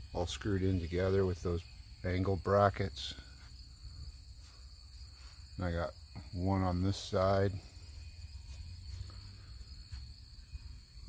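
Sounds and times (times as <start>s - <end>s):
insects trilling: 0.0s - 11.0s.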